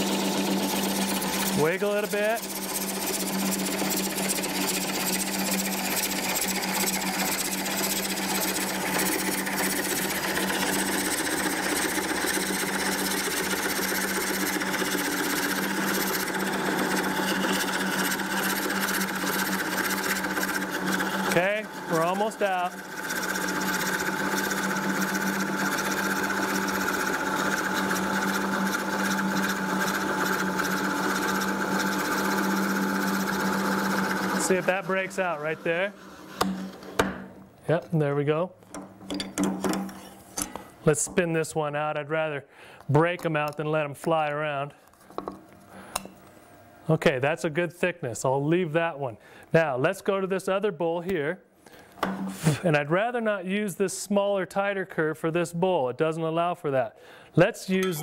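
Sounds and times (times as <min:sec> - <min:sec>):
lathe motor hum: 0:00.0 - 0:37.0
blade cutting wood: 0:00.0 - 0:37.2.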